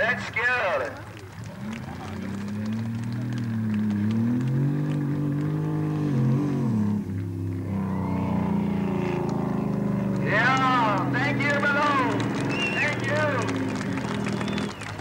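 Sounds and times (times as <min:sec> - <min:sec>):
truck engine running hard: 0:01.0 - 0:15.0.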